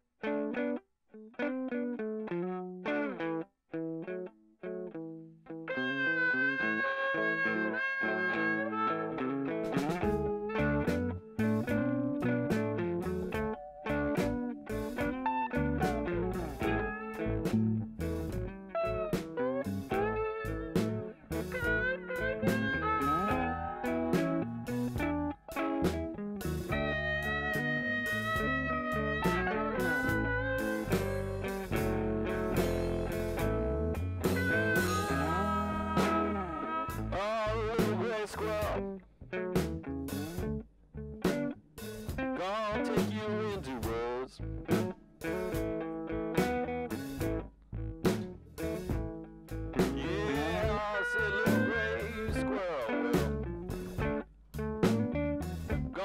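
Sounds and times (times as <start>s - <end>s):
lead guitar: 0.2s - 56.0s
drum kit: 9.7s - 13.5s, 14.1s - 18.5s, 19.2s - 37.1s, 39.6s - 40.6s, 41.3s - 42.3s, 44.7s - 45.8s, 46.4s - 47.4s, 48.0s - 56.0s.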